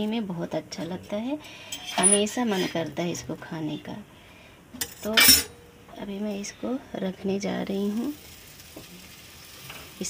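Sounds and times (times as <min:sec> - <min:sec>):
flatbread sizzling on griddle: 0:07.8 - 0:10.0.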